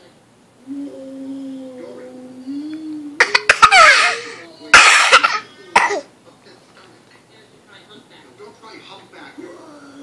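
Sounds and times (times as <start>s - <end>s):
baby laughing: 3.2s - 5.5s.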